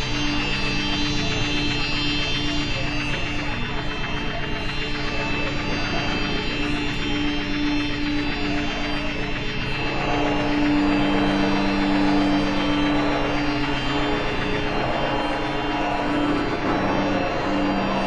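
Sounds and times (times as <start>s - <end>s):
electronic drone: 0.0s - 18.0s.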